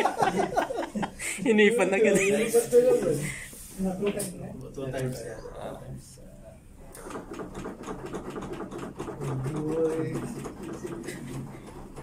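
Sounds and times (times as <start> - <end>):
manikin clicking rhythmically: 6.9 - 12.0.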